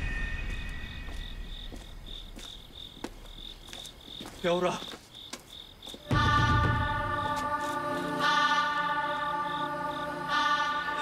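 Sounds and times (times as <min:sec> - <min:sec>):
crickets chirping: 0:00.0 - 0:11.0
faint footsteps on pavement: 0:00.5 - 0:06.1.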